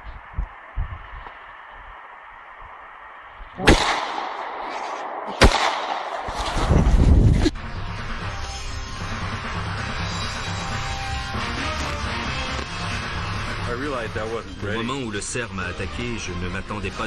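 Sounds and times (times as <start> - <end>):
handgun shots with echo: 3.6 - 6.7.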